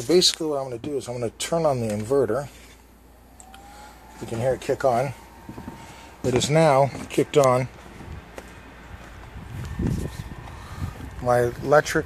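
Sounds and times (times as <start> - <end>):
pool filter pump humming: 2.6 - 7.9.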